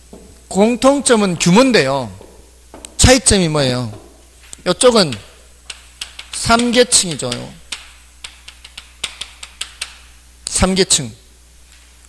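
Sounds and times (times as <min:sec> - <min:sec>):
chalk tapping on blackboard: 0:01.0 - 0:03.0, 0:04.8 - 0:10.1.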